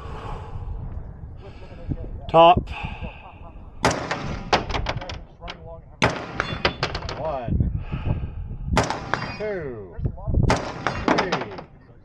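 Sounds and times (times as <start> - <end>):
rapid gunshots: 3.8 - 4.8, 6.0 - 7.1, 8.8 - 9.4, 10.5 - 11.7.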